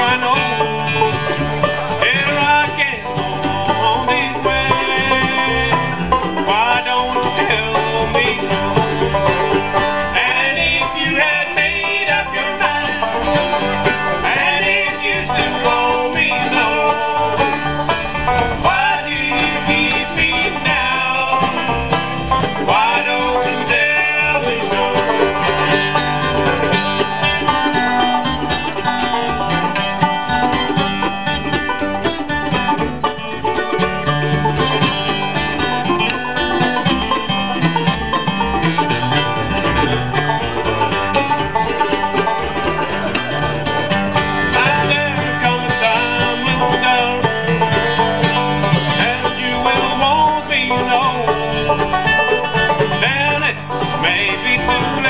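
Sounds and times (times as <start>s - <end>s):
banjo: 0.0s - 55.0s
bluegrass band playing: 0.0s - 55.0s.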